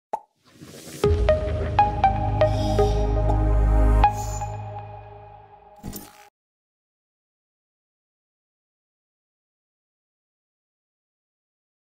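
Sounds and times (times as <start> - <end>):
music with deep bass: 1.0 - 5.7.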